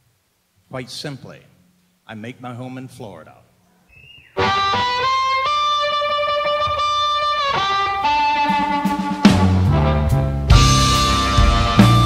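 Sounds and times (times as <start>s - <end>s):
electric blues guitar note: 4.4s - 12.0s.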